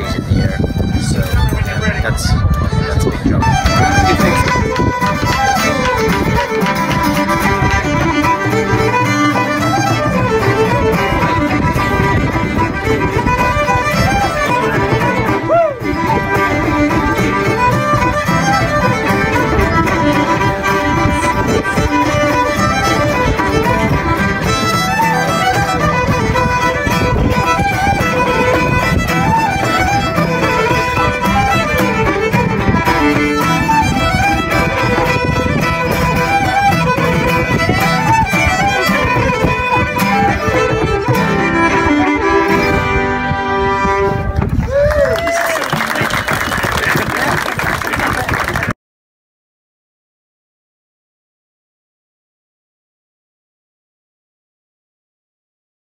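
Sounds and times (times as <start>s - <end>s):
fiddles: 0.0s - 46.3s
acoustic guitar: 3.4s - 44.6s.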